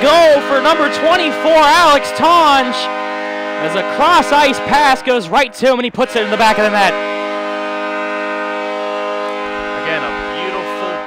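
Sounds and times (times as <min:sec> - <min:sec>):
held chord over loudspeakers: 0:00.0 - 0:11.0.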